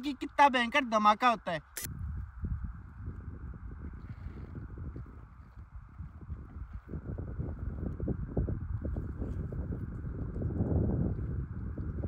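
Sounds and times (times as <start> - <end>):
wind buffeting microphone: 1.9 - 12.0.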